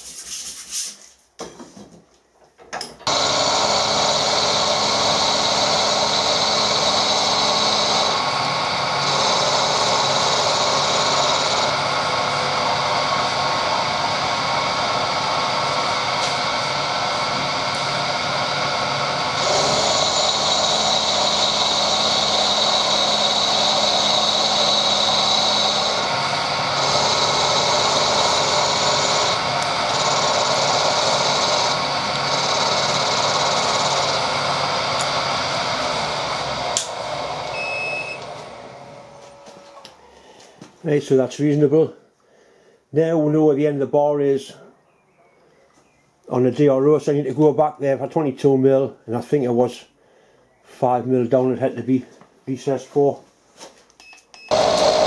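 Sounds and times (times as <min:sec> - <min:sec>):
hissing metal cutting: 0:03.1 - 0:37.6, 0:54.5 - 0:55.0
milling machine drone: 0:03.1 - 0:39.9, 0:54.5 - 0:55.0.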